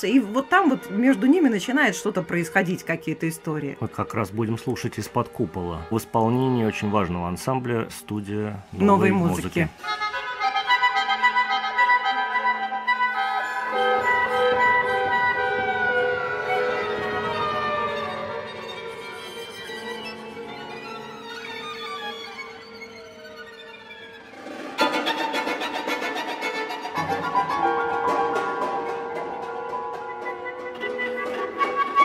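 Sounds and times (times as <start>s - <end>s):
rapid repeated string notes: 12.5s - 32.0s.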